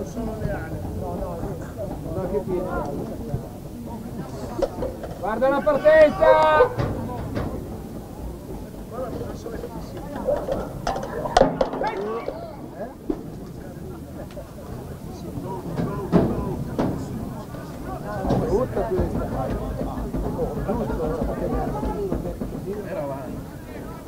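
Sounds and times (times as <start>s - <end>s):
spectators chattering: 0.0s - 24.0s.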